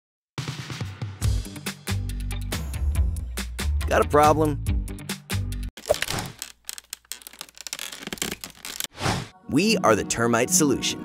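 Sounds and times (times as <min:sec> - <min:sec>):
dry crackling and clicking: 0:05.8 - 0:08.9.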